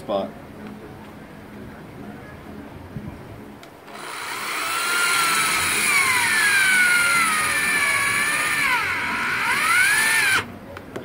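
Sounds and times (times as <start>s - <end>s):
electric drill with hole saw: 3.9s - 10.5s.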